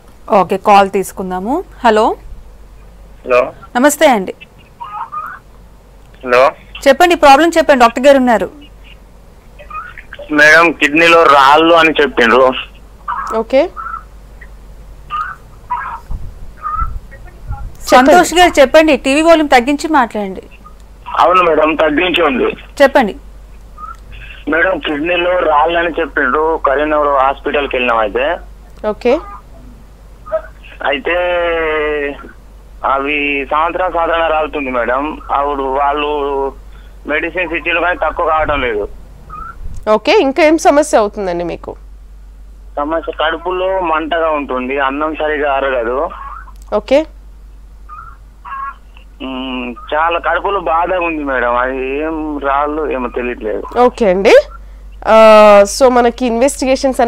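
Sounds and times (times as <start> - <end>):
person speaking: 6.1 - 14.5, 15.1 - 41.8, 47.9 - 57.0
low thumps: 16.1 - 17.9.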